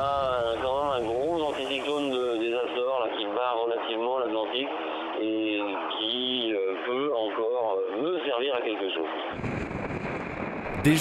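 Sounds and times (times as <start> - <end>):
man speaking over telephone: 0.0 - 9.2.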